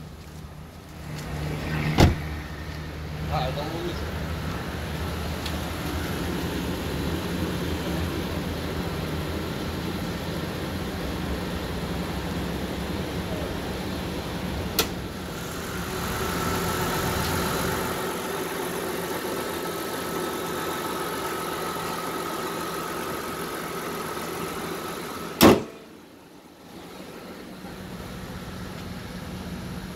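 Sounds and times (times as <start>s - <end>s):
car engine idling: 2.7s - 29.9s
sharp click: 14.8s - 15.0s.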